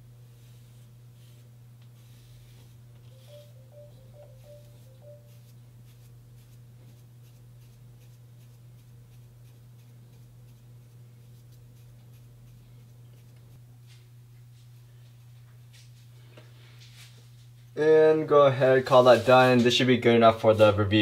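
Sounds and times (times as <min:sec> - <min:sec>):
low hum: 0:00.0 - 0:06.5
comb scratching through hair: 0:04.3 - 0:13.4.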